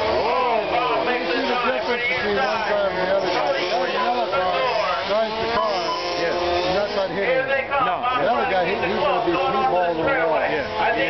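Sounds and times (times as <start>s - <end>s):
man talking over public address: 0.2s - 11.0s.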